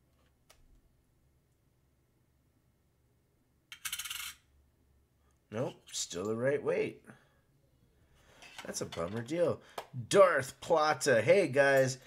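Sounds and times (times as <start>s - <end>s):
coin clinking on metal scale: 3.7s - 4.4s.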